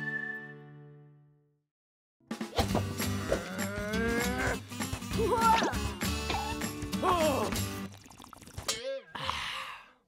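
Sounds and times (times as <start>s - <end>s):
cartoon character groaning: 3.2s - 4.6s.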